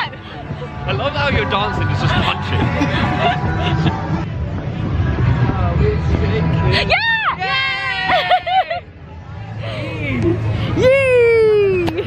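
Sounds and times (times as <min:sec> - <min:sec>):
crowd chatter: 0:00.0 - 0:12.0
woman laughing: 0:08.1 - 0:08.8.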